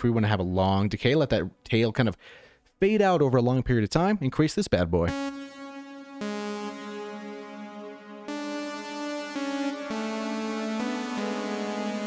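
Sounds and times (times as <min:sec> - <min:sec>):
sawtooth synth chords with reverb: 0:05.1 - 0:12.0.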